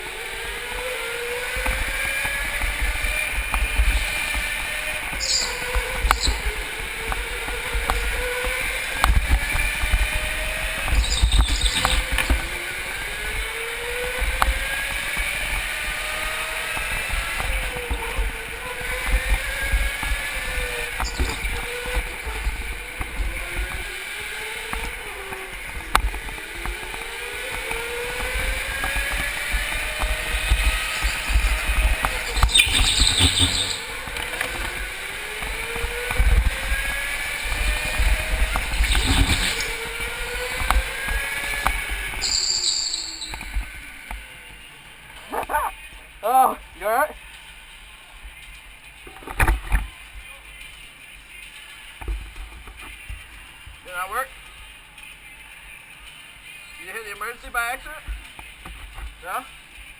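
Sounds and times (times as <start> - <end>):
go-kart motor revving: 0.0 - 47.1.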